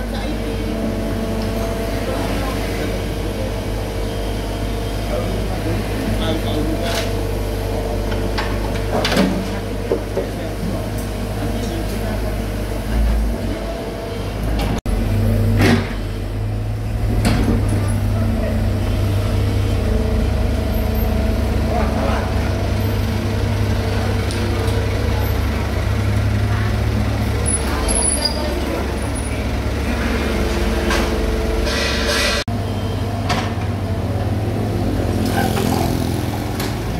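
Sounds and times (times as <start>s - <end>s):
excavator diesel engine running: 0.0s - 36.9s.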